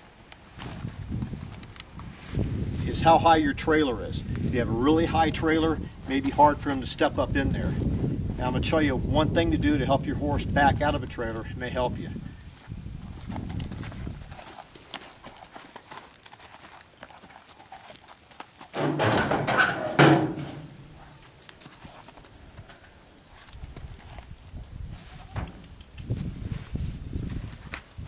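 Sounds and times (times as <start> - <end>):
horse hooves clopping: 12.4 - 26.6.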